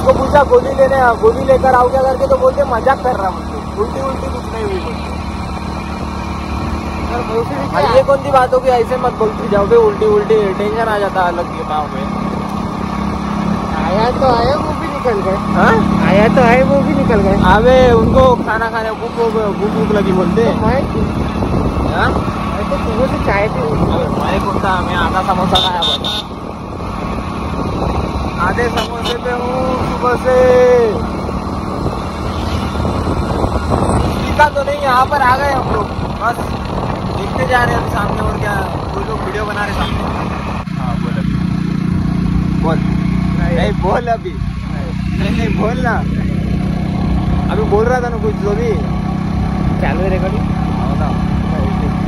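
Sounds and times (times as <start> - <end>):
motorcycle engine running: 0.0 - 52.0
voices talking: 0.0 - 52.0
wind buffeting microphone: 19.4 - 42.4.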